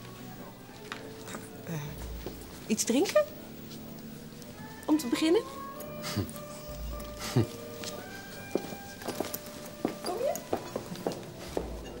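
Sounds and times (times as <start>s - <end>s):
faint steady music tones: 0.0s - 12.0s
footsteps on hard floor: 7.0s - 12.0s.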